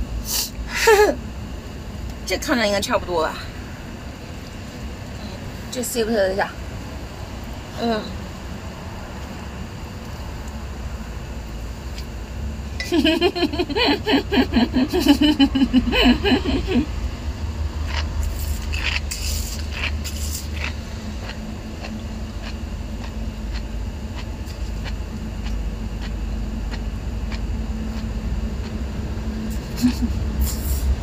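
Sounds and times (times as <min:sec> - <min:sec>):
low steady hum: 0:00.0 - 0:31.0
woman laughing: 0:00.7 - 0:01.2, 0:12.8 - 0:16.9, 0:29.5 - 0:30.3
slurping: 0:17.9 - 0:23.6.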